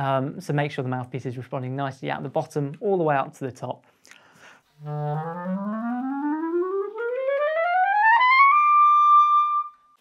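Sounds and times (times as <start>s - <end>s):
clarinet rising run: 4.8s - 9.9s.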